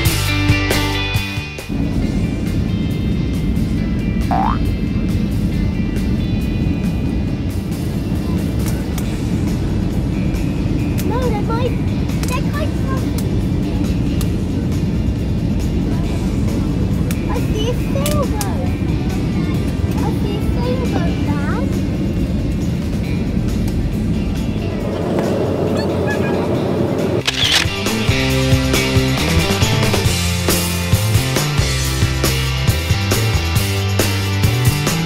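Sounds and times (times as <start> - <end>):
airliner cabin engine noise: 1.7 - 28.2
passengers' voices: 23.6 - 27.2.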